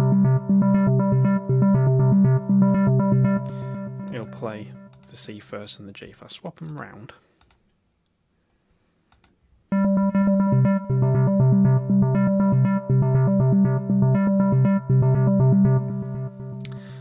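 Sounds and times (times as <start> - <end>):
synthesizer arpeggio: 0.0 - 5.1, 9.7 - 16.9.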